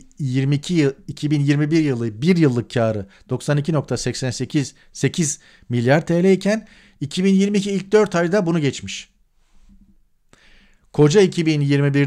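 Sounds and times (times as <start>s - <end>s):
man talking: 0.0s - 9.1s, 10.9s - 12.0s
quick breath in: 6.7s - 7.0s, 9.4s - 10.9s.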